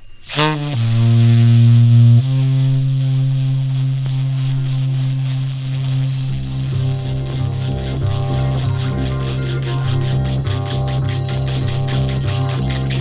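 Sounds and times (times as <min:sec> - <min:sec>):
low droning note: 0:00.3 - 0:13.0
deep bass notes: 0:00.5 - 0:13.0
busy higher texture: 0:06.1 - 0:13.0.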